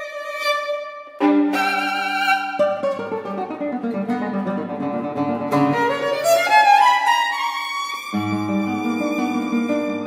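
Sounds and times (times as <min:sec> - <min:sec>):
classical guitar figures: 0:00.0 - 0:10.0
violin: 0:00.0 - 0:10.0.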